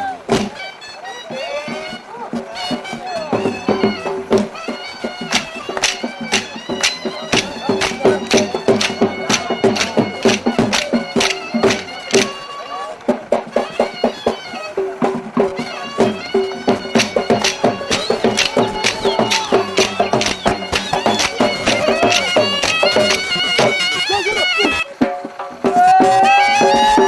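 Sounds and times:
drum beating steadily: 0:00.0 - 0:27.0
folk melody: 0:00.0 - 0:27.0.

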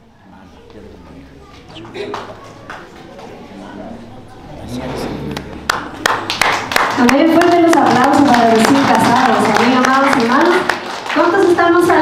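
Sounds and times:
hands clapping in rhythm: 0:05.4 - 0:12.0.

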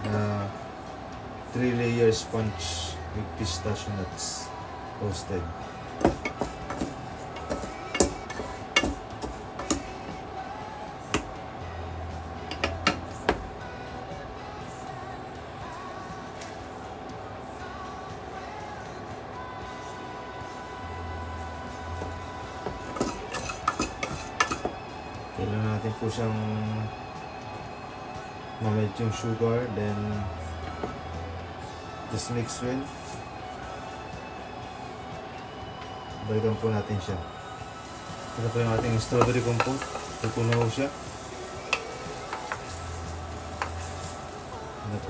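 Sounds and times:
background music: 0:00.0 - 0:45.0
utensils clinking against dishes: 0:06.0 - 0:10.0, 0:12.5 - 0:13.1, 0:22.6 - 0:24.8, 0:38.4 - 0:41.0, 0:41.6 - 0:42.8.

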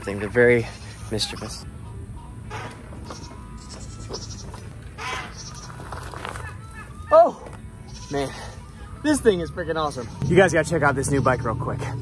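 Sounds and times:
goat bleating: 0:03.0 - 0:05.8, 0:07.8 - 0:08.4.

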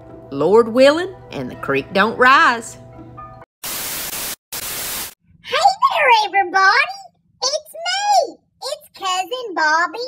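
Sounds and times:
faint background music: 0:00.0 - 0:03.4.

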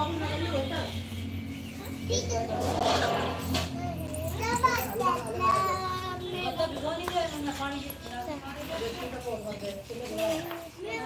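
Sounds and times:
children talking and playing: 0:00.0 - 0:11.0.

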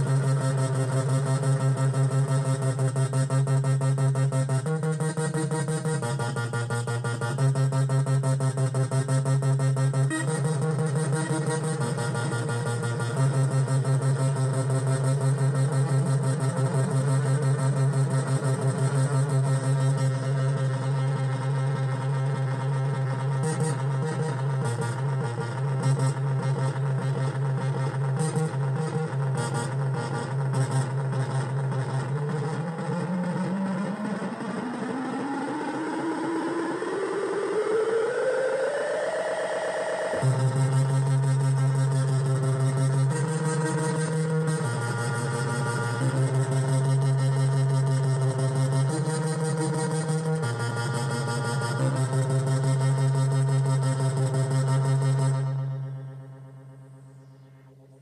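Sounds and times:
low synth bass note: 0:00.0 - 0:34.4, 0:39.4 - 0:58.0
rising synth pitch sweep: 0:00.0 - 0:58.0.

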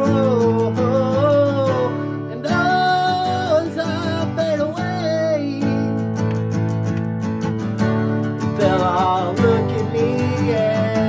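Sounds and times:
man singing: 0:00.0 - 0:06.3, 0:08.4 - 0:11.0
strummed acoustic guitar: 0:00.0 - 0:11.0.

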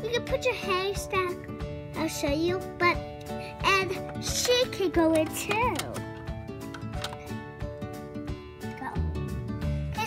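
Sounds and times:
background music with sustained notes: 0:00.0 - 0:10.0
plastic toy pieces clicking: 0:04.0 - 0:07.3.

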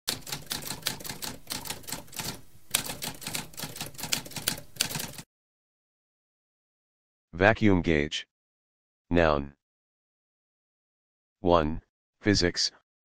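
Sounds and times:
typewriter keys clacking: 0:00.1 - 0:05.2.

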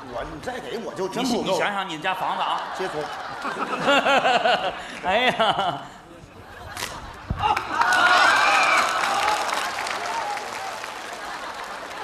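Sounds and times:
studio audience applause: 0:07.4 - 0:12.0.

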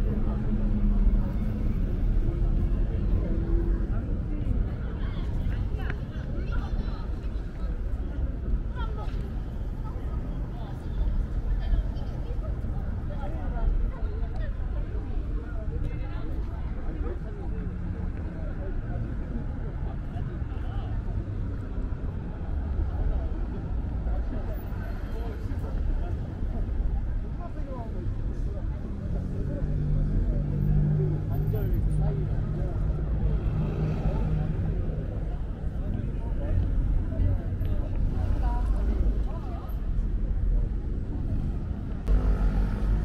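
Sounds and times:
passers-by talking: 0:00.0 - 0:43.0
road traffic rumble: 0:00.0 - 0:43.0
vehicle engine humming: 0:29.1 - 0:43.0.

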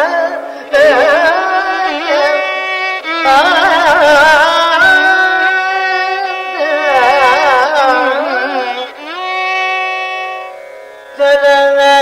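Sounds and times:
indian classical melody: 0:00.0 - 0:12.0.

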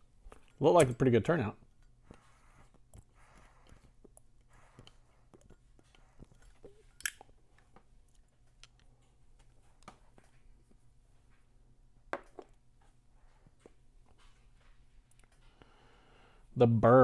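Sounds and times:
man drawing on a pipe: 0:01.6 - 0:06.9.

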